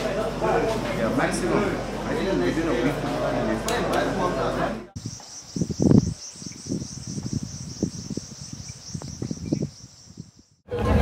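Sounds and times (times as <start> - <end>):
low thuds near microphone: 5.0 - 10.3
pulsing insect chorus: 5.0 - 10.7.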